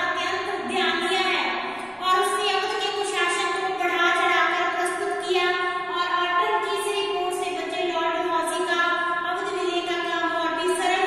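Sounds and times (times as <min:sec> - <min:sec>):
woman lecturing: 0:00.0 - 0:11.0.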